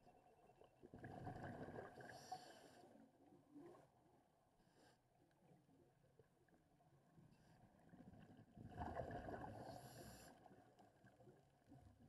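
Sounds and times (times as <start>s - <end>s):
underwater bubbles rushing: 0.8s - 2.3s, 8.0s - 10.0s.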